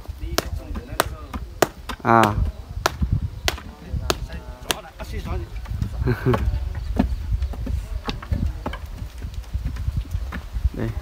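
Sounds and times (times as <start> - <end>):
wooden rammers pounding earth: 0.0 - 11.0.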